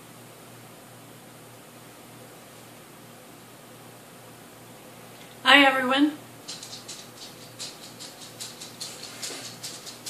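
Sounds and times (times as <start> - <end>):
light ticking and rustling: 6.5 - 10.0.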